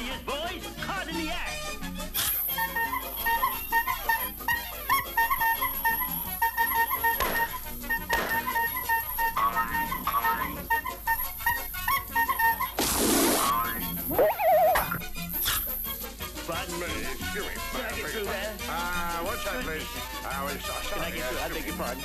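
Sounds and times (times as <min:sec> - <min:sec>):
cartoon background music: 0:00.0 - 0:22.0
wobbling whistle-like slide: 0:02.2 - 0:16.0.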